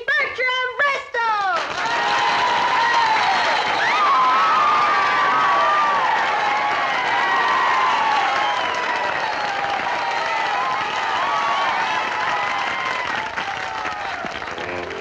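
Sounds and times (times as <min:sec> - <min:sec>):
crowd applauding and cheering: 0:01.6 - 0:15.0.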